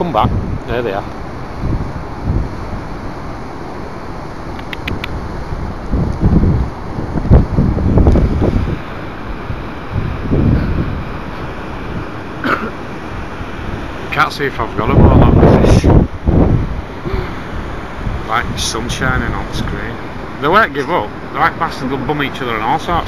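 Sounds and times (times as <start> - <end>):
wind buffeting microphone: 0.0 - 23.0.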